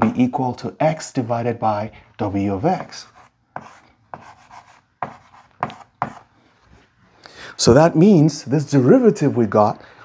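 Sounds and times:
chalk tapping and scratching: 0:02.7 - 0:06.3.

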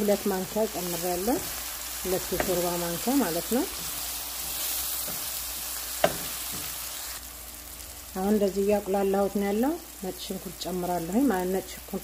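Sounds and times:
onions sizzling in oil: 0:00.0 - 0:12.0.

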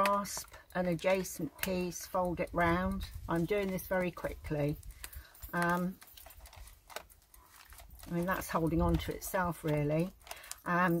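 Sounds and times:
chicken wire clicks and scrapes: 0:00.0 - 0:11.0.

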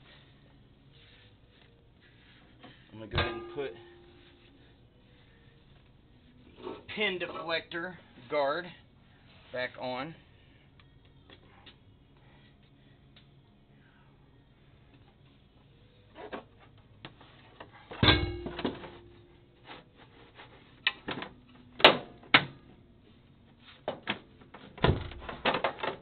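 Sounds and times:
metal clanks and knocks: 0:03.1 - 0:04.1, 0:17.7 - 0:19.2.

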